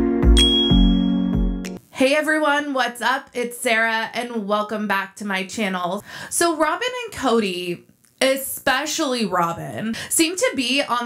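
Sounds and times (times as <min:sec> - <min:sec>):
synth chords over bass beat: 0:00.0 - 0:01.8
bell-like notification ding: 0:00.4 - 0:01.4.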